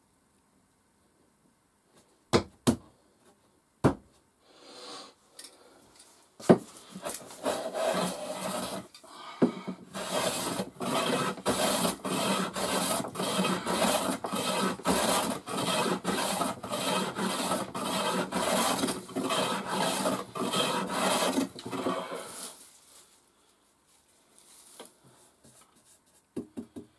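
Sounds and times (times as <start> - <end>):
hand plane shaving wood: 7.0 - 8.9, 9.8 - 22.6.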